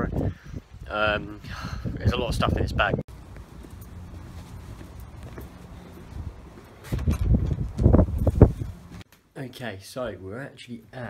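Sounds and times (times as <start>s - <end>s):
low rumbling microphone noise: 0.0s - 9.0s
footsteps on brick paving: 3.1s - 9.1s.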